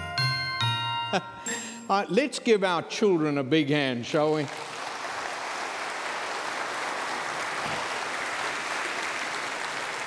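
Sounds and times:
large crowd applauding: 4.2s - 10.0s.

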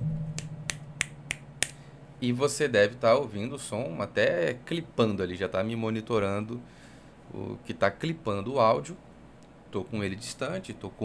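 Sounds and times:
low steady hum: 0.0s - 11.0s
finger snaps: 0.4s - 1.8s.

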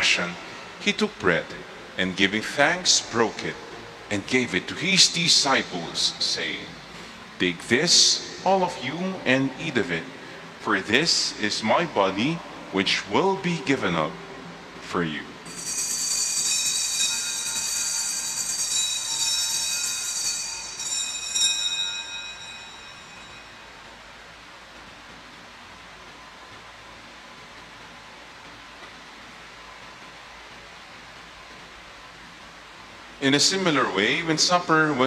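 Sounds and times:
low room hum: 0.0s - 35.0s
small bells ringing: 15.5s - 24.0s.

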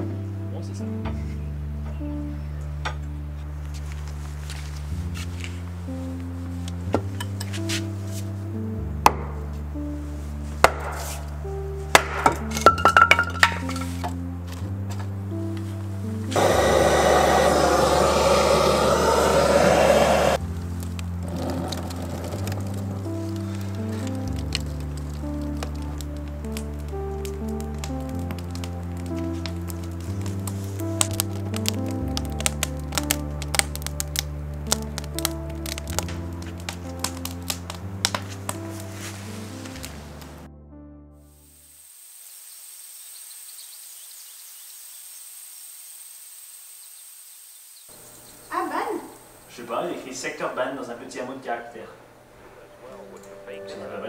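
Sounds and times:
slow bass chord music: 0.0s - 41.6s, 52.4s - 54.0s
wood fire crackling and popping: 3.7s - 9.8s, 10.6s - 40.5s
loud rushing noise: 16.3s - 20.4s
faint hiss with high tone: 41.4s - 49.7s.

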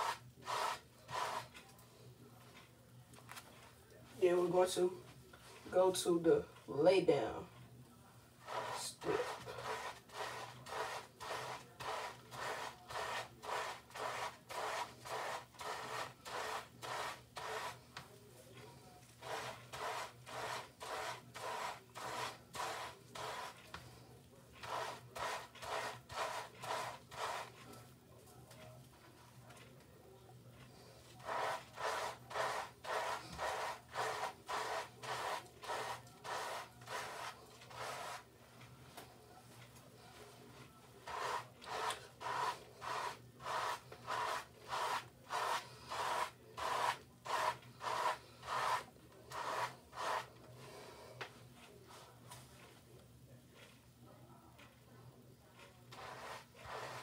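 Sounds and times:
brush rubbing through lathered hair: 0.0s - 1.6s, 8.4s - 18.0s, 18.6s - 24.0s, 24.6s - 27.9s, 31.0s - 38.3s, 40.1s - 50.4s, 55.9s - 57.0s.

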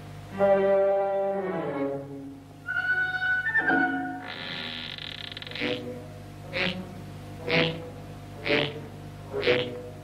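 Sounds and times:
faint underscore music: 0.0s - 10.0s.

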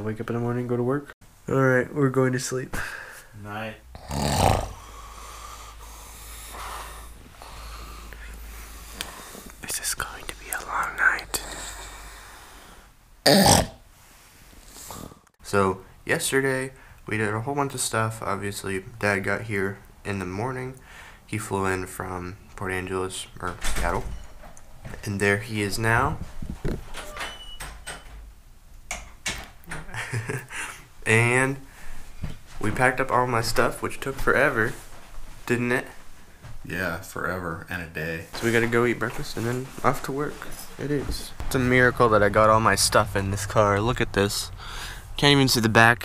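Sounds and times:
person snoring: 3.9s - 9.5s
steady low hum: 39.2s - 46.0s.

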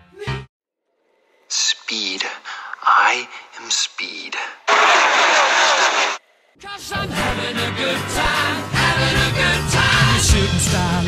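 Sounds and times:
voice fragments: 1.5s - 6.2s, 8.0s - 8.6s.

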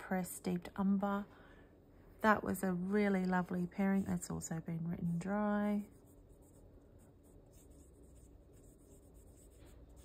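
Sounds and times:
pen nib scratching on paper: 5.9s - 10.0s.

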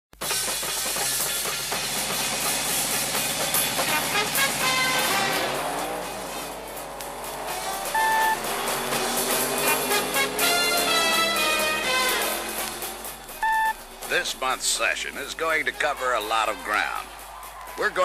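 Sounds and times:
music: 0.2s - 18.0s
car engine sound effects: 0.3s - 16.3s
vehicle passing by: 2.3s - 15.7s
short steady beep: 7.9s - 8.4s, 13.4s - 13.8s.

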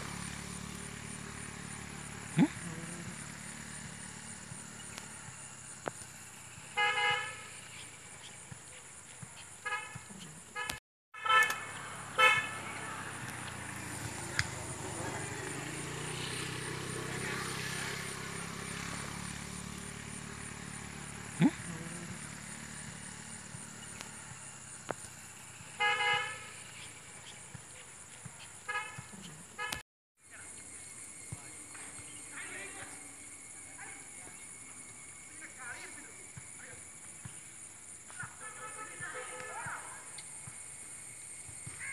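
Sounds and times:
vehicle horn toots: 6.7s - 7.6s, 9.6s - 13.4s, 25.8s - 26.7s, 28.7s - 29.8s, 38.2s - 39.9s.

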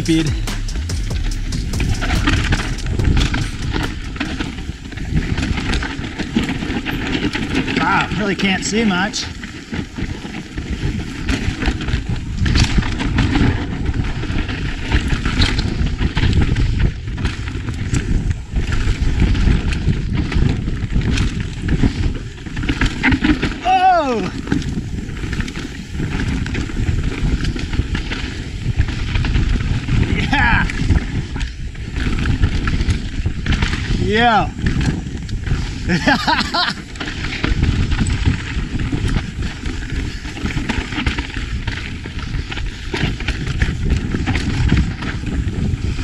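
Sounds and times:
bike rattling over rough ground: 0.0s - 46.0s
tyres scrabbling on dirt: 0.0s - 46.0s
wind rushing over microphone: 0.0s - 46.0s.

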